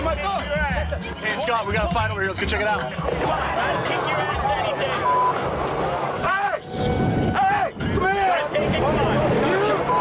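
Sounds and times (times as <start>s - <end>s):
noisy background: 0.0s - 10.0s
censor bleep: 4.9s - 5.4s, 9.8s - 10.0s.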